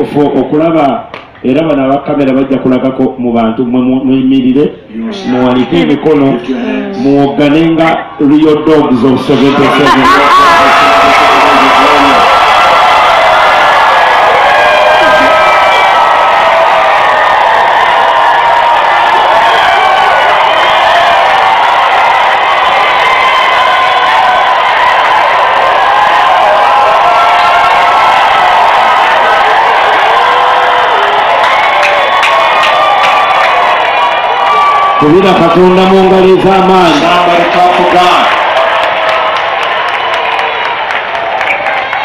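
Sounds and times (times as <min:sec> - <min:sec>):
crowd cheering and shouting: 0:04.8 - 0:42.0.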